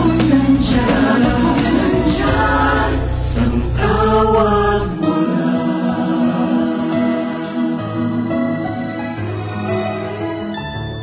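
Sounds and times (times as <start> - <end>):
low bass notes: 0.0 - 5.2
voices singing together: 0.0 - 8.9.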